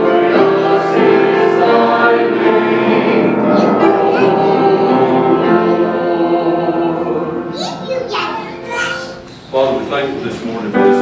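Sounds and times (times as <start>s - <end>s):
mixed choir singing: 0.0s - 7.8s.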